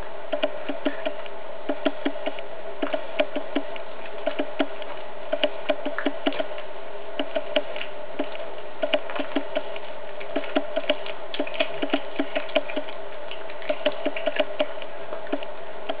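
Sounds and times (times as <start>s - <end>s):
steady low hum: 0.0s - 16.0s
cat chewing crunching bones: 7.2s - 15.5s.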